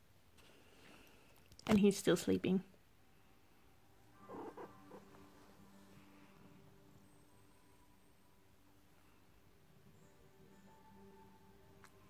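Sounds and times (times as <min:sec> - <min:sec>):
cat purring faintly: 0:04.1 - 0:08.0.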